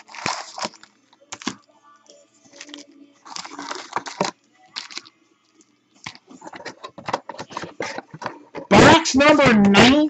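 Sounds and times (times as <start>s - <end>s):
foil wrappers crinkling: 0.0s - 1.7s, 2.5s - 5.2s.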